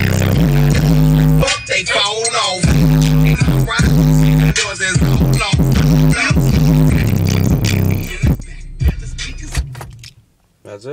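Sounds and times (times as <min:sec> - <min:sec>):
bass-heavy hip hop music: 0:00.0 - 0:10.2.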